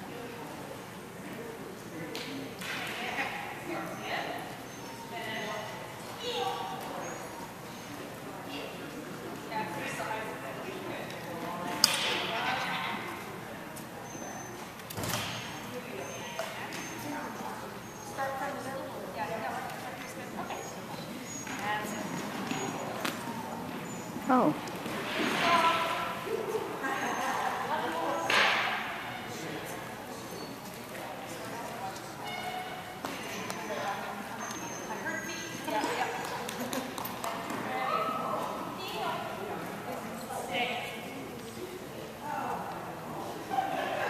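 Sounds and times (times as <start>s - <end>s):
indistinct voices in hall: 0.0s - 44.0s
short high squeaks: 32.2s - 33.6s.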